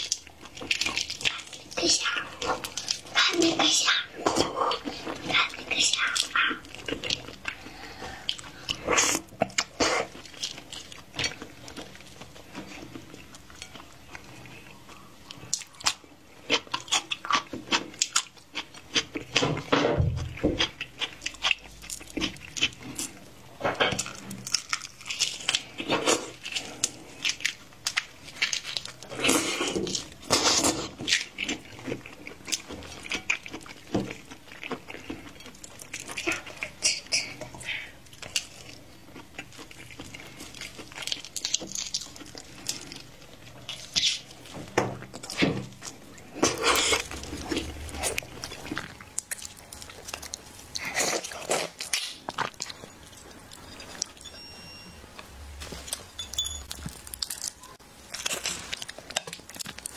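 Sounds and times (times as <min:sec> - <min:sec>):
prawn shells crackling: 0:55.6 - 0:59.9.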